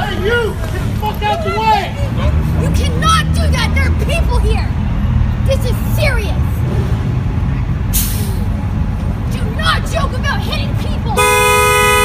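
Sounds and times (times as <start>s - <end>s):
bus horn two-tone blast: 11.2s - 12.0s.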